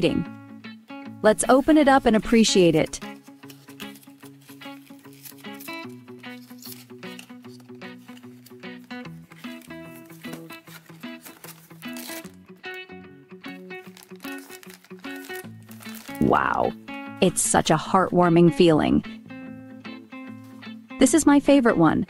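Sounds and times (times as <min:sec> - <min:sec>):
soft background music: 0:00.0 - 0:22.0
plastic bag crinkling and tearing: 0:03.0 - 0:12.5, 0:13.5 - 0:16.7.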